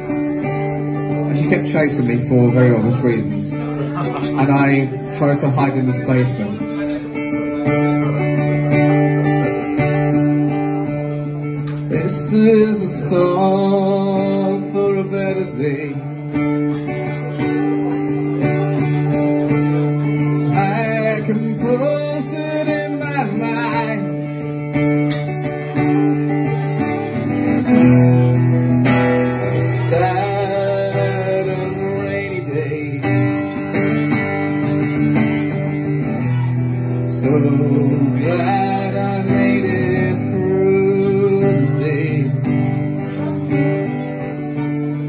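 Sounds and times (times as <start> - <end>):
man singing: 0.0 - 10.6, 11.7 - 45.0
acoustic guitar chords: 0.0 - 45.0.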